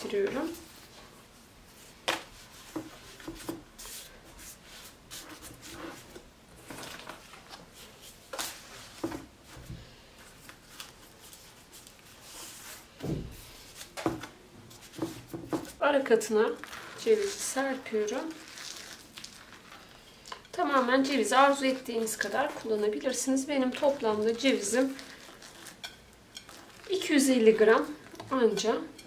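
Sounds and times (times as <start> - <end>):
dough sheets rustling and crinkling: 0.0 - 29.0.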